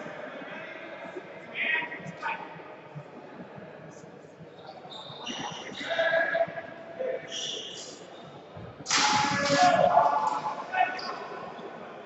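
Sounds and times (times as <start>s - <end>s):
echoing indistinct voices: 0.0s - 12.0s.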